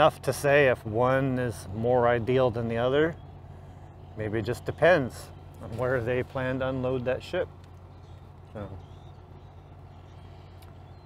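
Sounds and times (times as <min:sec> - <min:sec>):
low machinery drone: 0:00.0 - 0:11.0.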